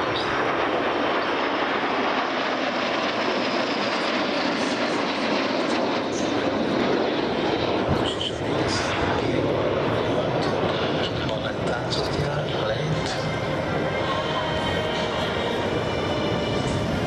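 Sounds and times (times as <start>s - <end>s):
jet engines rushing past: 0.0s - 17.0s.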